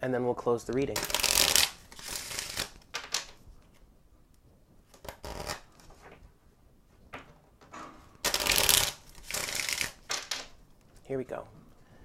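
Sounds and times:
cards being shuffled: 0.7 - 3.9, 4.8 - 6.2, 8.2 - 10.5.

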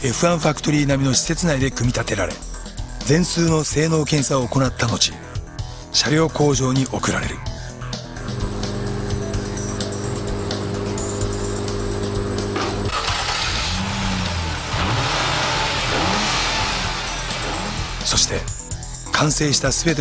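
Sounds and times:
car engine idling and revving: 8.2 - 19.1.

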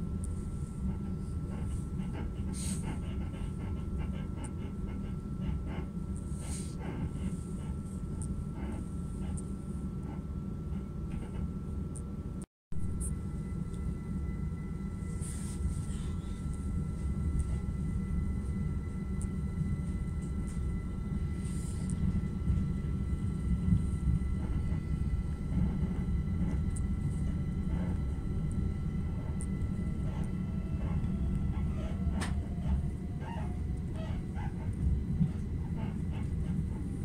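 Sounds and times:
train rumble: 0.0 - 37.0
faint high whine: 6.0 - 37.0.

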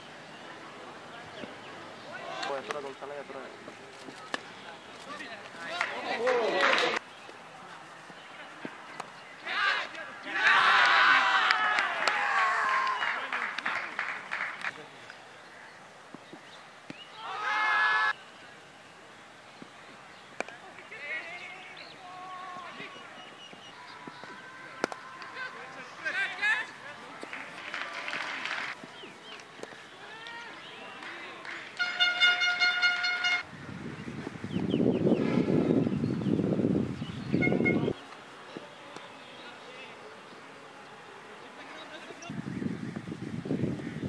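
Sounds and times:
players calling: 0.0 - 33.5
voices: 0.0 - 33.5, 37.3 - 44.0
loud held shout: 9.4 - 13.2, 17.1 - 18.2
cricket bat striking ball: 24.8 - 25.0
horn tooting: 31.8 - 33.5, 37.3 - 38.0.

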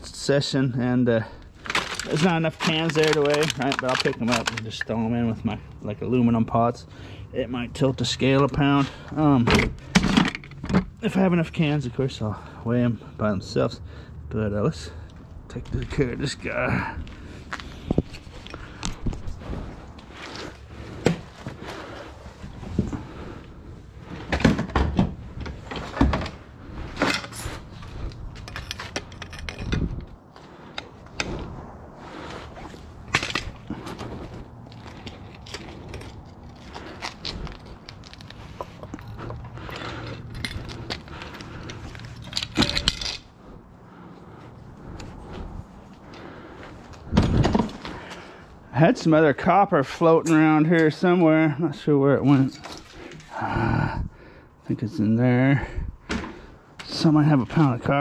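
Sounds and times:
scrap metal clanking and scraping: 1.6 - 5.0, 24.0 - 31.5, 32.2 - 43.4.

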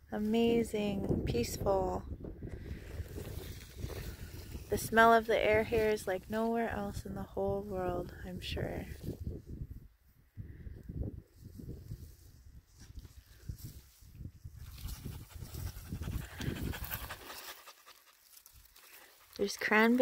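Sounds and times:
low rumble on microphone: 0.0 - 17.4
dog panting: 15.0 - 18.2.

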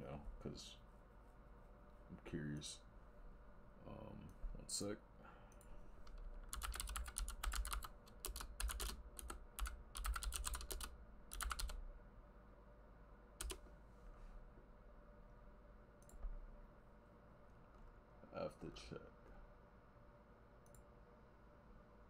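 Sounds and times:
typing on computer keyboard: 6.1 - 11.8, 13.4 - 13.6.

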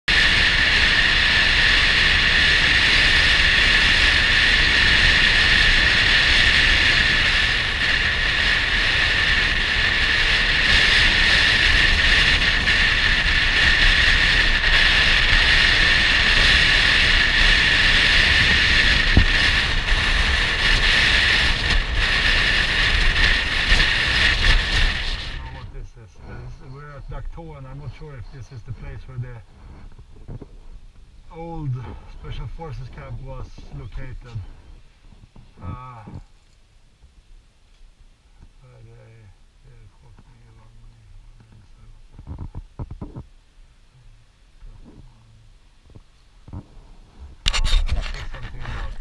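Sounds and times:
motorbike engine running: 0.1 - 25.6
rushing air on camera: 0.1 - 26.6, 46.5 - 49.0.

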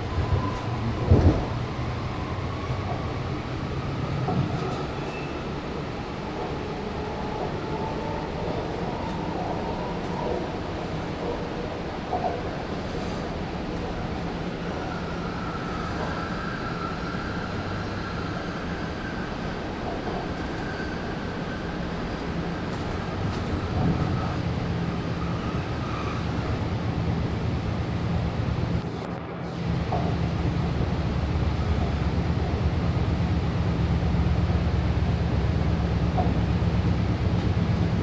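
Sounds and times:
electric train running rumble: 0.0 - 38.0.

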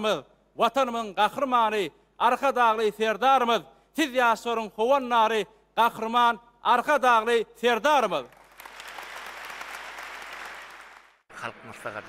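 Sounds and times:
audience applauding: 8.3 - 11.2.

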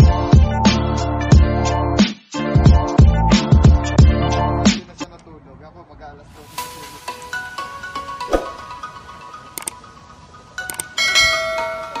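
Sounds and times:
quick clicks: 9.6 - 9.8, 10.7 - 10.9
bright bell chime: 11.0 - 12.0.

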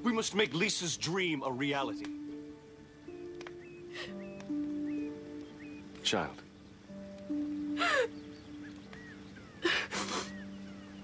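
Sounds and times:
woman sobbing: 3.9 - 4.2, 7.7 - 8.2, 9.5 - 10.5.

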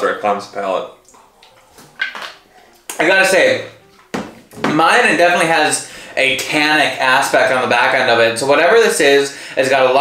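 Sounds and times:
sipping and swallowing water: 1.0 - 2.5.

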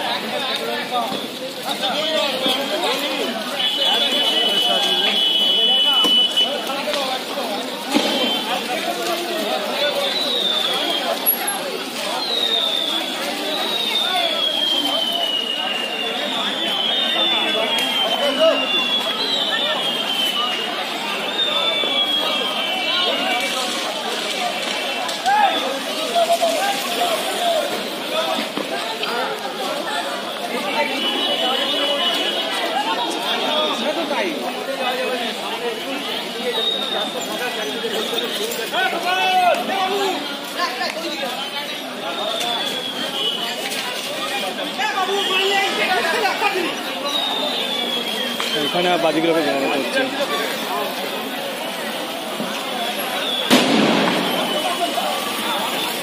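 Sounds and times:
crowd chattering: 0.0 - 56.0
firecrackers crackling: 0.0 - 56.0
firecracker bang: 7.9 - 8.6, 53.3 - 56.0.

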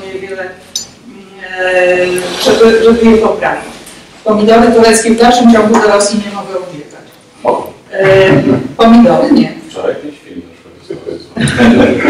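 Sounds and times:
person speaking through a microphone: 5.2 - 9.6.

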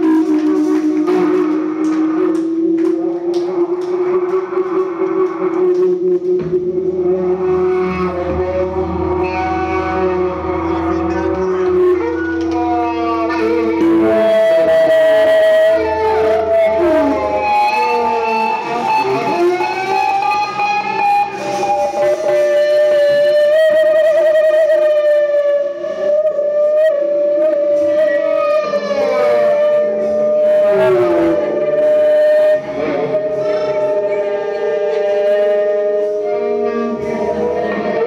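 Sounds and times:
electric guitar sustained bending note: 0.0 - 38.0
live band playing: 0.0 - 38.0.

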